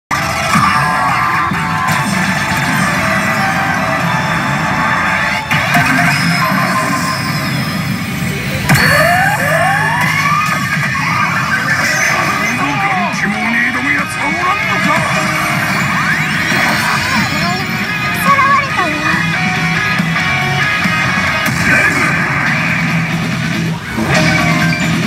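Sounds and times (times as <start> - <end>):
pachinko sound effects: 5.4 - 20.7, 23.8 - 25.0
pachinko machine music: 5.5 - 22.2, 23.6 - 25.0.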